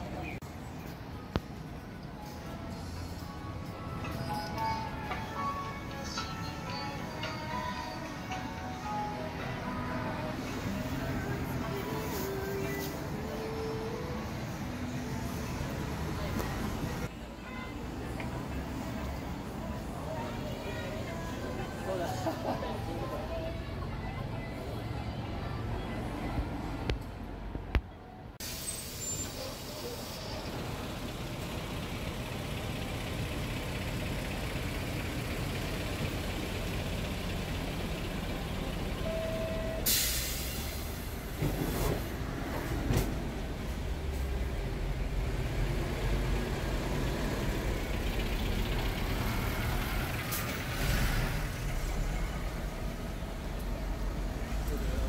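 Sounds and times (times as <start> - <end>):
rumble of passing vehicles: 0.0 - 55.0
sharp hiss: 28.4 - 30.5, 39.8 - 42.1.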